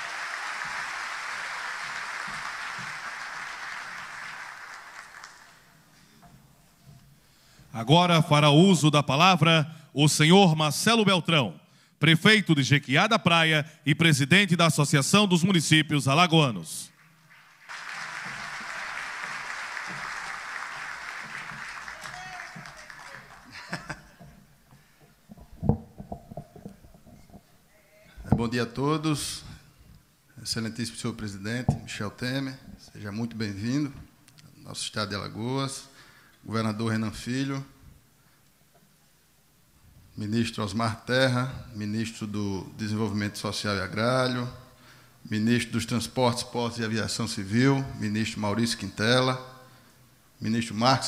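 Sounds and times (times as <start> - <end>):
audience applauding: 0.0 - 5.8, 16.9 - 24.1
microphone handling knocks and creaks: 24.2 - 27.6.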